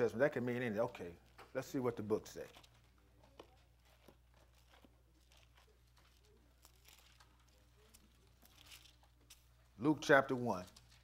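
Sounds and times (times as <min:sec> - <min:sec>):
pages being turned: 0:02.3 - 0:09.6, 0:10.2 - 0:11.0.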